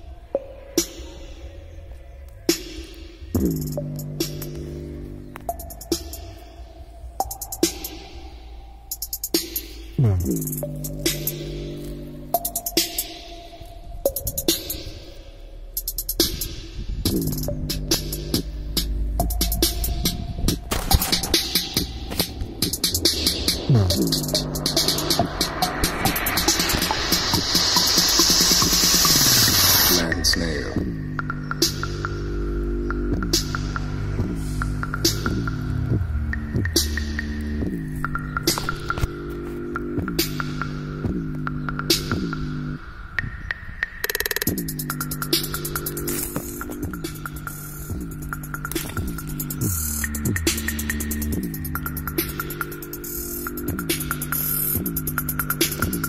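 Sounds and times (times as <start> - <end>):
dense loud music: 0.0 - 43.1, 44.4 - 56.0
ticking hi-hats: 2.5 - 42.8, 44.0 - 56.0
deep bass notes sliding downward: 15.4 - 30.1.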